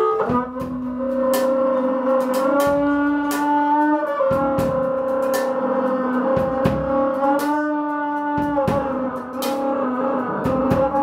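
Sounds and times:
cymbals struck: 0.0 - 11.0
double bass: 0.0 - 11.0
horns holding long notes: 0.0 - 11.0.

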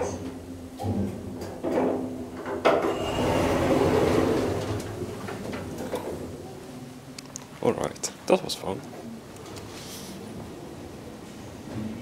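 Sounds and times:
elevator doors sliding open: 2.6 - 6.4.

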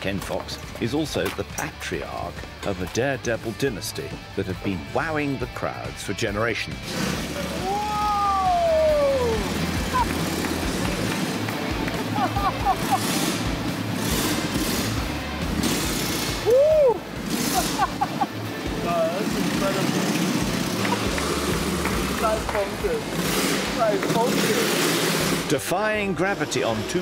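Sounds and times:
music: 0.0 - 27.0
motorcycle engines revving: 6.7 - 27.0.

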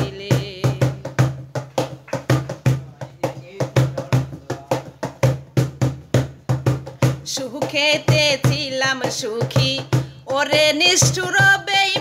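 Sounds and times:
person singing folk song: 0.0 - 1.4, 7.2 - 12.0
hand drum beating rhythm: 0.0 - 12.0.

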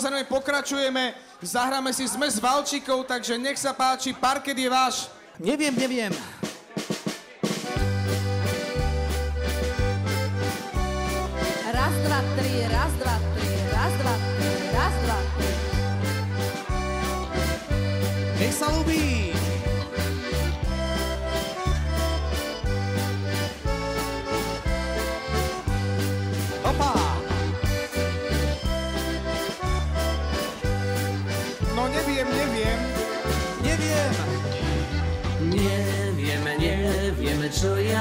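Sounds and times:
drum kit: 5.5 - 38.0
accordion playing tune: 7.5 - 38.0
bass notes: 7.7 - 38.0.

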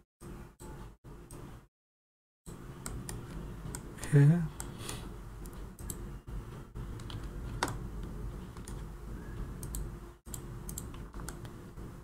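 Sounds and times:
low steady hum: 2.5 - 12.0.

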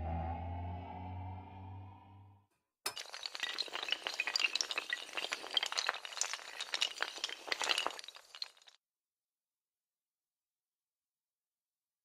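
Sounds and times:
dominoes toppling clatter: 2.9 - 8.8.

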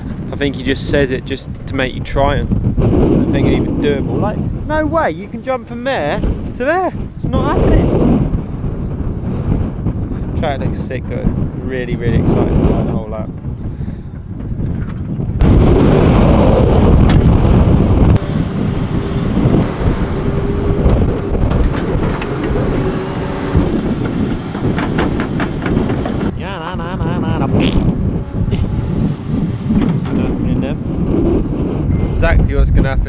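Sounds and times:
wind buffeting microphone: 0.0 - 33.0
excavator engine running: 15.4 - 26.7, 27.4 - 32.0.

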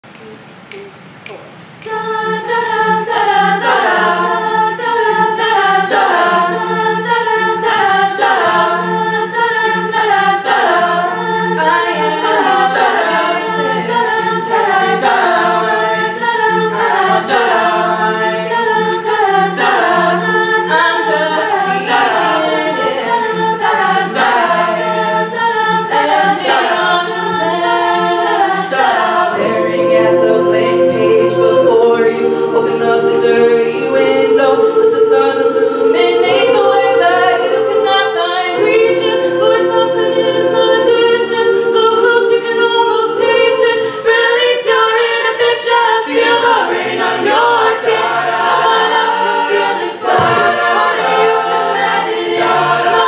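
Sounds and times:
a cappella group singing: 1.7 - 53.0.

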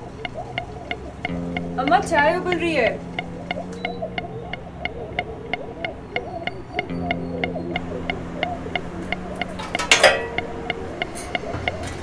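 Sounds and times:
low steady hum: 0.0 - 12.0
sharp even ticking: 0.0 - 12.0.

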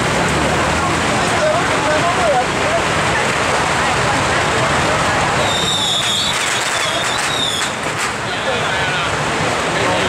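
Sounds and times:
crowd hubbub: 0.0 - 10.0
street traffic: 0.0 - 10.0.

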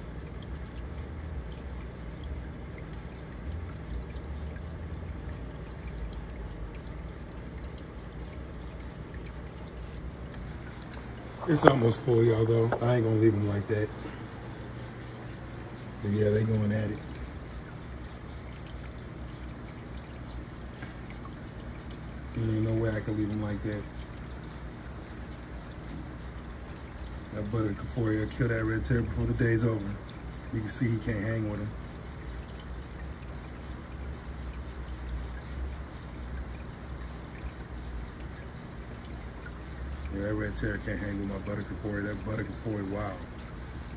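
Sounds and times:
aquarium water trickling: 0.0 - 43.9
faint water drips: 0.0 - 43.9.

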